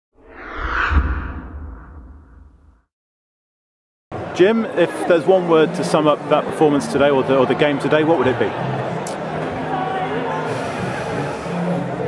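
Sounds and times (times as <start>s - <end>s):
deep rumble: 0.2s - 2.8s
whoosh sound effect: 0.2s - 2.8s.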